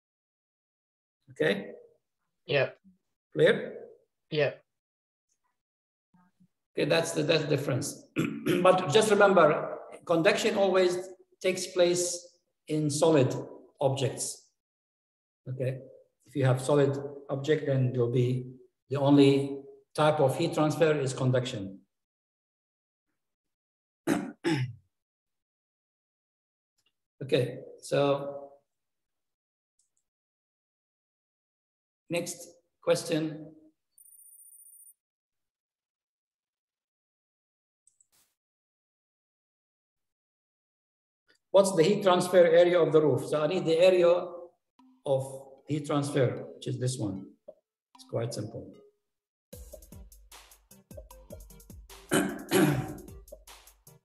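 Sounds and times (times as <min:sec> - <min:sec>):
man clearing his throat: 0:08.2 - 0:08.8, 0:24.1 - 0:24.8, 0:52.1 - 0:53.1
man coughing: 0:08.2 - 0:08.9, 0:24.1 - 0:24.8, 0:52.1 - 0:53.1
countdown music with steady beat: 0:49.6 - 0:54.0.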